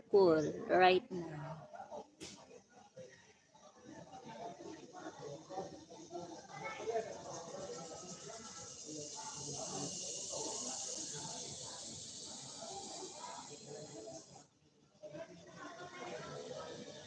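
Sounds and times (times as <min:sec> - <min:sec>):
steady high hiss: 0:05.4 - 0:14.5.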